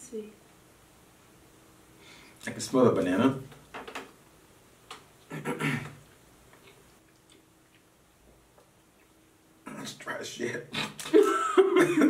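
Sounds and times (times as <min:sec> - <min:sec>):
chewing and mouth sounds: 0:06.5 - 0:09.4.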